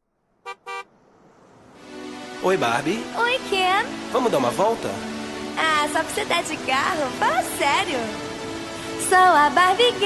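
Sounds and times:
car horn toots: 0:00.4 - 0:00.9.

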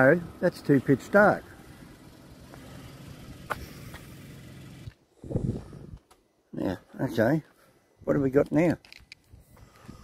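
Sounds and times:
car engine idling: 0:00.0 - 0:05.0.

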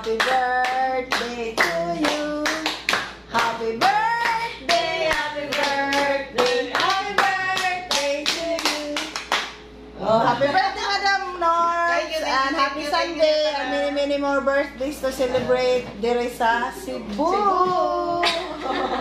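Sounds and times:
group of voices singing: 0:00.0 - 0:09.2
hand-clapping in time: 0:00.0 - 0:09.6.

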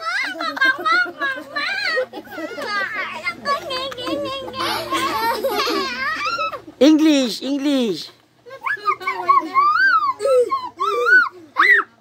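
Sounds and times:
children chattering: 0:00.0 - 0:06.8, 0:08.0 - 0:12.0
children laughing: 0:00.0 - 0:06.8, 0:08.4 - 0:12.0.

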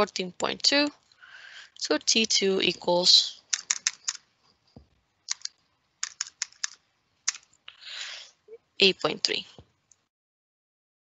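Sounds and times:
sharp key clicks: 0:05.3 - 0:07.5.

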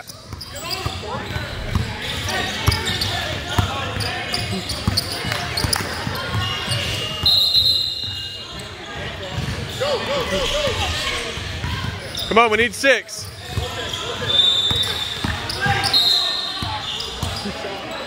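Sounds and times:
voices in a gym: 0:00.0 - 0:18.0.

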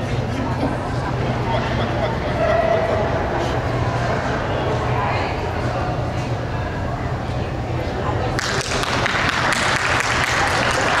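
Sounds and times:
voices: 0:00.0 - 0:11.0
audience applauding: 0:08.4 - 0:11.0.

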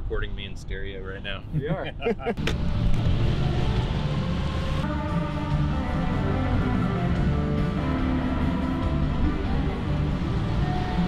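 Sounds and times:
tyres on wet street: 0:00.0 - 0:11.0
car road rumble: 0:01.4 - 0:11.0.

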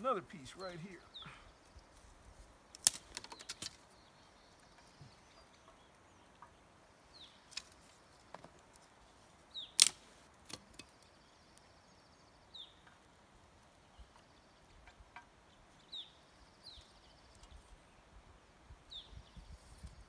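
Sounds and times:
dry sticks snapping: 0:02.7 - 0:04.0, 0:07.4 - 0:08.9, 0:09.7 - 0:11.7.

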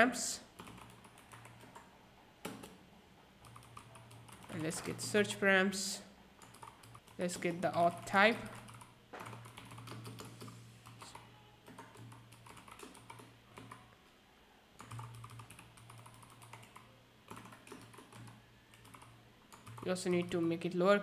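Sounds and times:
typing on computer keyboard: 0:00.6 - 0:02.8, 0:03.4 - 0:05.1, 0:06.4 - 0:13.9, 0:14.8 - 0:20.6.

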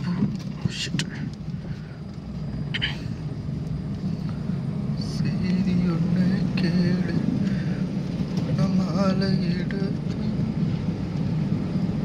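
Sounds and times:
engine and tyre drone: 0:00.0 - 0:12.0.

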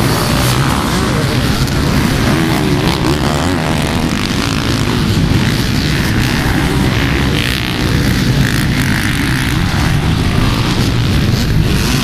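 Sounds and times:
dirt bike engines droning: 0:00.0 - 0:12.0.

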